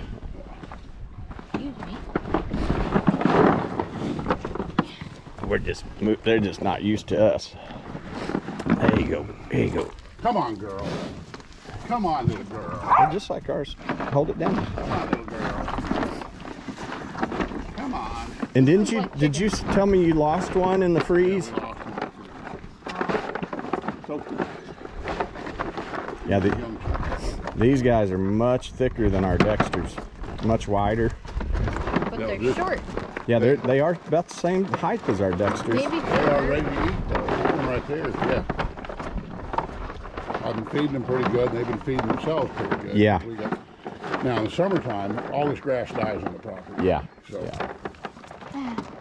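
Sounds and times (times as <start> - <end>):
cattle crunching feed cubes: 0.0 - 49.0.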